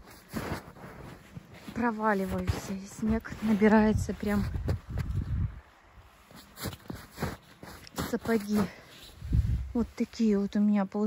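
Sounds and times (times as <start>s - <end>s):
footsteps in deep snow: 0.0s - 10.7s.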